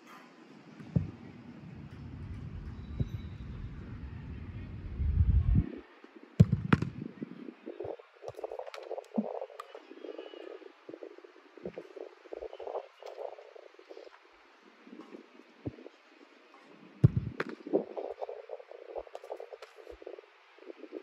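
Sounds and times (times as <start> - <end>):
low rumbling: 1.0 - 5.7
football struck with thud: 6.4 - 7.0, 17.0 - 17.6.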